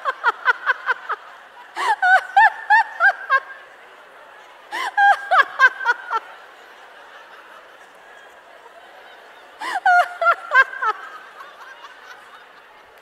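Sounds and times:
audience laughing: 0.0 - 13.0
woman laughing: 1.8 - 3.5, 4.7 - 6.3, 9.6 - 12.4.

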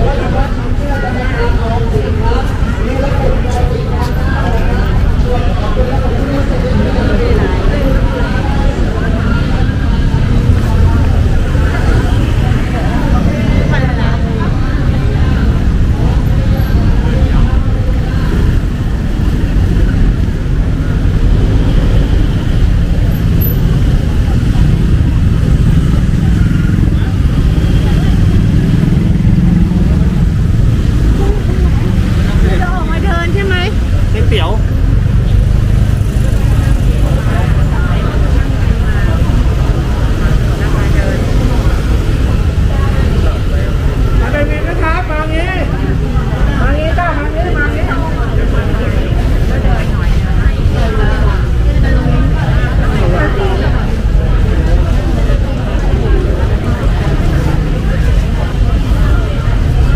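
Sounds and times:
crowd chatter: 0.0 - 59.9
low traffic rumble: 0.0 - 59.9
motorcycles passing: 0.0 - 59.9.

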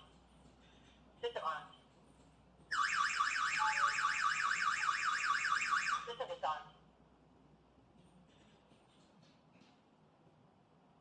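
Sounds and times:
alarm siren wailing: 2.7 - 6.1.

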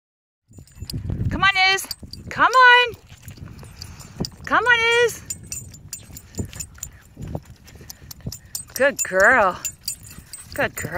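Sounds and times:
person calling a dog: 4.5 - 5.3.

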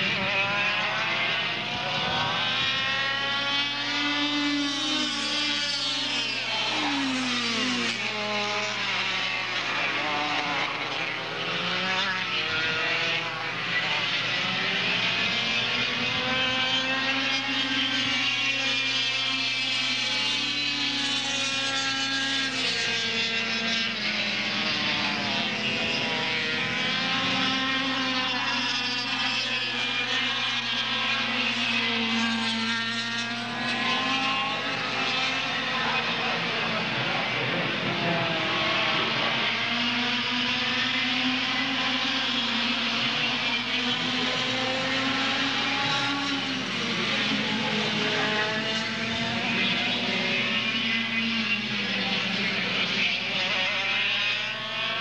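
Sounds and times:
kart engines whining: 0.0 - 55.0.

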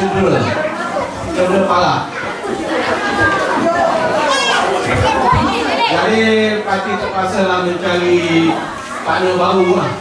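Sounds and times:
children playing and chattering: 0.0 - 10.0.

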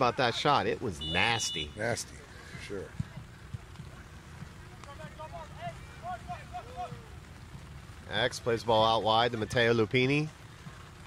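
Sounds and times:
distant players shouting: 0.0 - 7.6
low outdoor rumble: 0.0 - 11.0.

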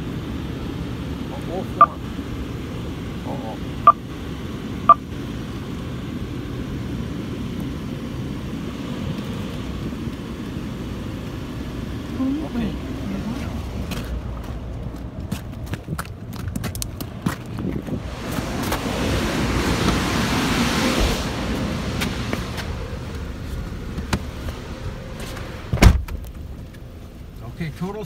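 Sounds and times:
low outdoor rumble: 0.0 - 28.0
car door slamming: 25.6 - 26.4.

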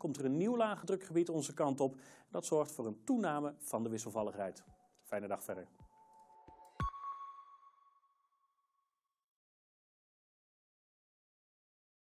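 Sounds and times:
faint held electronic tone: 5.6 - 8.4.

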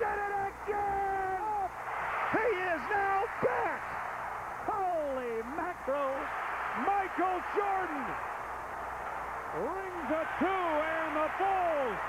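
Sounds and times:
man shouting excitedly: 0.0 - 1.7, 2.4 - 3.8
arena crowd noise: 0.0 - 12.0.

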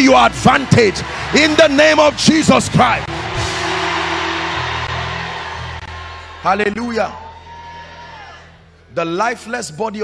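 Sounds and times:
low keyboard chords: 0.0 - 7.4
congregation cheering and shouting: 0.0 - 8.7.

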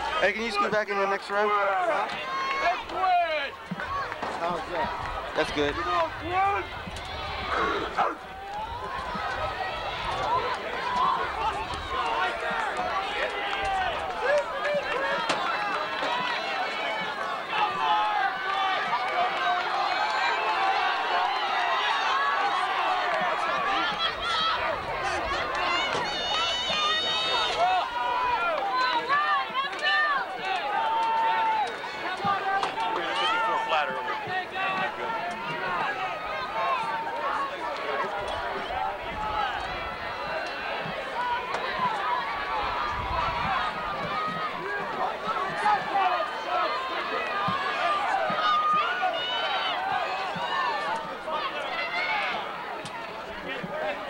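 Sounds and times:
crowd shouting and cheering: 0.0 - 54.0.

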